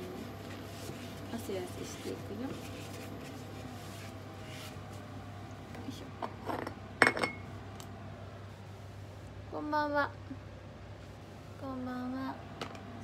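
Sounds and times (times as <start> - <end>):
steady low hum: 0.0 - 13.0
utensils and dishes clinking: 6.3 - 7.5.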